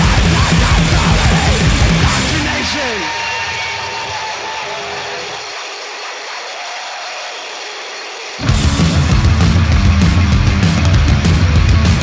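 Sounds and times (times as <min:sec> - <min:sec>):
hardcore punk band playing: 0:00.0 - 0:05.6, 0:08.3 - 0:12.0
ringing wash of noise: 0:01.9 - 0:09.4.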